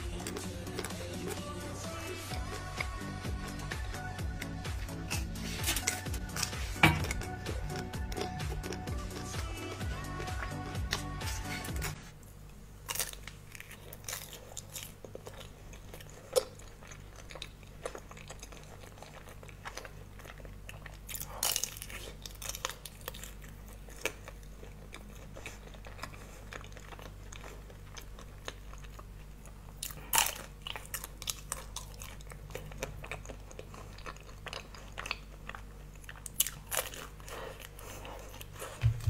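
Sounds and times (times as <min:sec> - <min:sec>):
chewing with crisp crunches: 0:00.0 - 0:39.0
low steady hum: 0:00.0 - 0:39.0.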